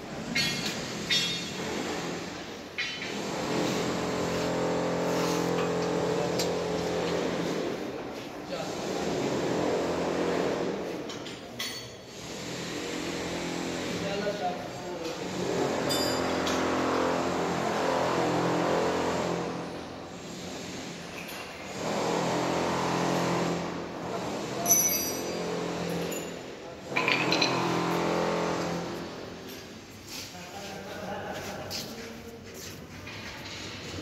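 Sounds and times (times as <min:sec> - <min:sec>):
hand tool clinking on steel: 0:24.6 - 0:25.4.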